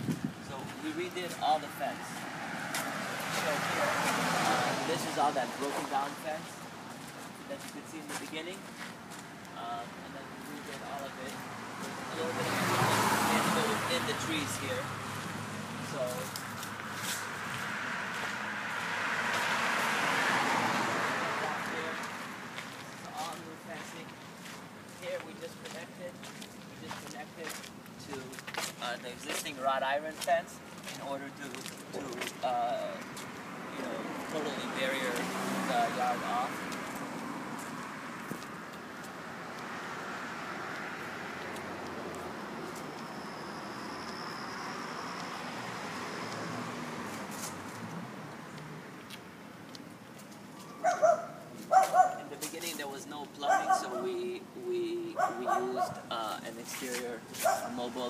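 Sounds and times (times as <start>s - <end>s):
car passing: 0.0s - 26.2s, 28.8s - 58.0s
road traffic: 0.0s - 58.0s.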